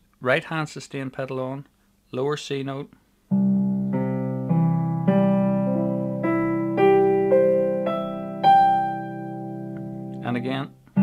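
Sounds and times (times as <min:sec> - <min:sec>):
piano notes ringing: 0:03.3 - 0:11.0.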